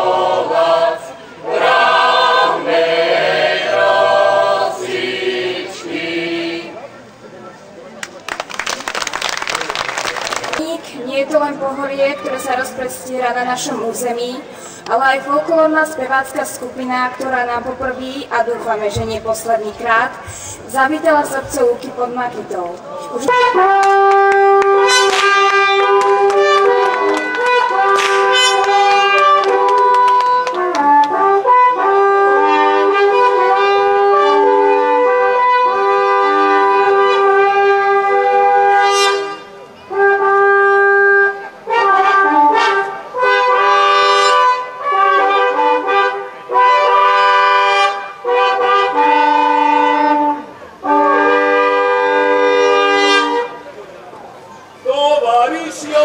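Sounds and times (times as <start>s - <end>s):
wooden horns in harmony: 0.0s - 7.0s, 23.1s - 56.0s.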